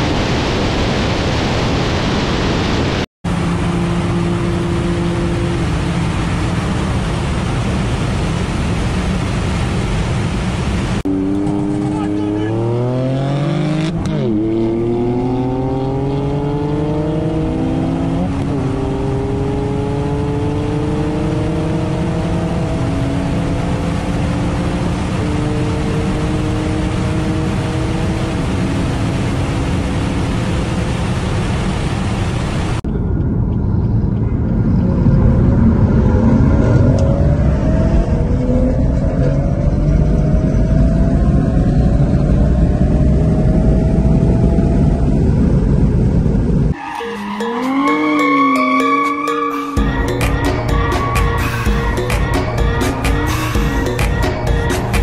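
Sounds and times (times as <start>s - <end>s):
road noise: 0.0s - 55.0s
car engine accelerating: 3.3s - 8.8s, 11.0s - 31.6s, 32.9s - 55.0s.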